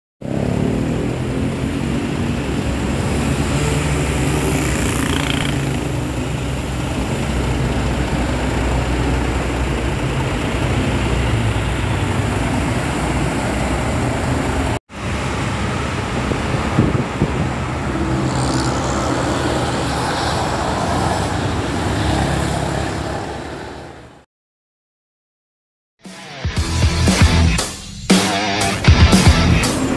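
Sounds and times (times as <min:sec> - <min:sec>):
constant traffic noise: 0:00.2 - 0:24.2, 0:28.7 - 0:29.9
motorcycles passing: 0:00.2 - 0:24.2, 0:28.4 - 0:29.9
buses passing: 0:00.2 - 0:24.3, 0:28.4 - 0:29.9.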